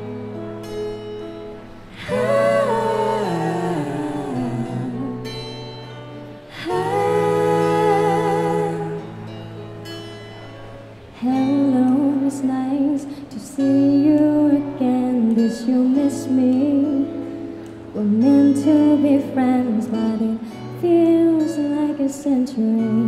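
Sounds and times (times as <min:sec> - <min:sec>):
acoustic guitar: 0:00.0 - 0:23.0
woman singing: 0:02.0 - 0:05.6, 0:06.5 - 0:09.4, 0:11.2 - 0:23.0.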